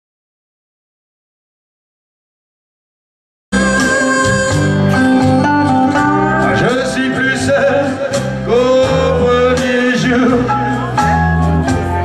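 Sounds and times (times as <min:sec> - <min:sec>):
man singing long notes: 0:03.6 - 0:11.0
amplified rock backing music: 0:03.6 - 0:12.0.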